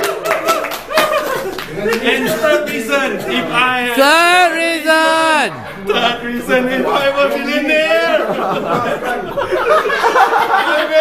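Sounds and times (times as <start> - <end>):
hand claps: 0.0 - 2.8
voices: 0.3 - 11.0
laughter: 0.6 - 2.5, 7.9 - 11.0.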